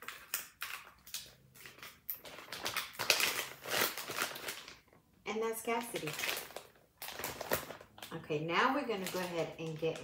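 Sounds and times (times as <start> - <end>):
plastic bags crinkling: 0.0 - 5.0, 5.6 - 10.0.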